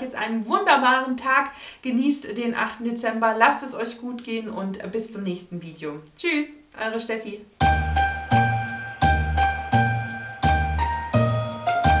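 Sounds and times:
bell-like notes over a beat: 7.6 - 12.0.

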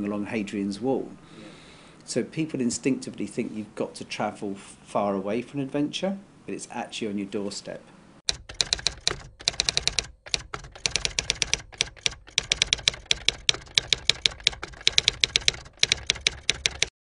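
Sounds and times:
keyboard typing clicks: 8.3 - 16.9.

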